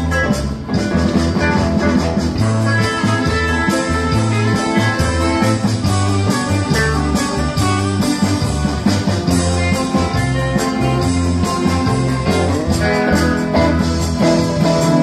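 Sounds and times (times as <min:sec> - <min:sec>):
electric bass: 0:00.0 - 0:15.0
guitars: 0:00.0 - 0:15.0
keyboard: 0:00.0 - 0:15.0.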